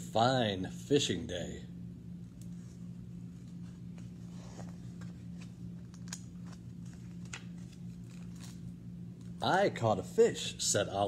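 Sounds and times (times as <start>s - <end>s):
steady low hum: 0.0s - 11.0s
paper page rustling: 3.3s - 8.7s.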